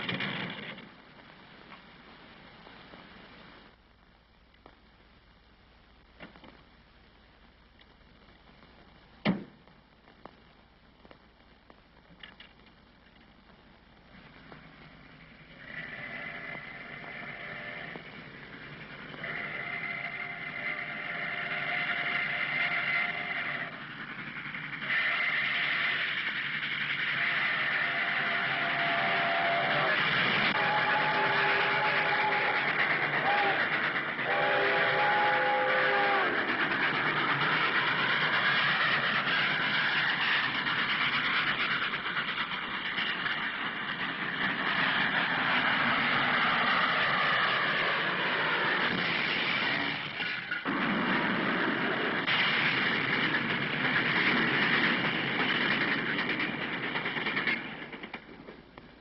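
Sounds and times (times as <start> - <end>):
locomotive rushing rumble: 13.8 - 59.0
steam locomotive whistle blasts: 19.2 - 23.8, 24.8 - 26.2, 27.1 - 36.6.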